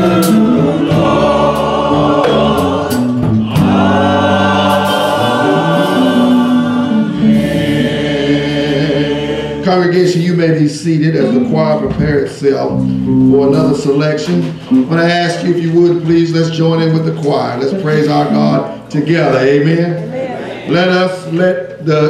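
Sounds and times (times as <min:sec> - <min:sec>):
choir and congregation singing a hymn: 0:00.0 - 0:12.1.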